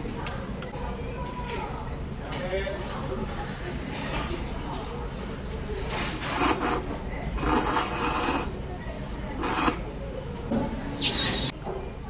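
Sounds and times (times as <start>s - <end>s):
person slurping noodles: 11.0s - 11.5s.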